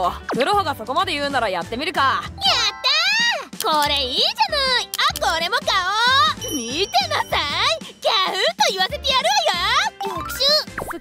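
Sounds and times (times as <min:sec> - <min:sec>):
woman speaking cheerfully: 0:00.0 - 0:10.7
light background music: 0:00.0 - 0:11.0
short high chime: 0:06.4 - 0:07.5.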